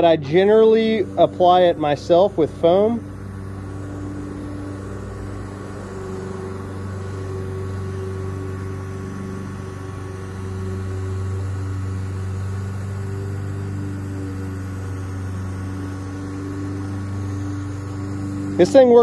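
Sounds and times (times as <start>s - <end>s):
airbrush compressor motor hum: 0.0s - 19.0s.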